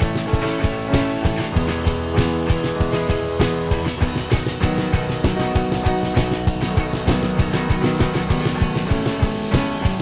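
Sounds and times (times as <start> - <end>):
drum kit beat with cymbals: 0.0 - 10.0
electric guitar: 0.0 - 10.0
electric keyboard chords: 0.0 - 10.0.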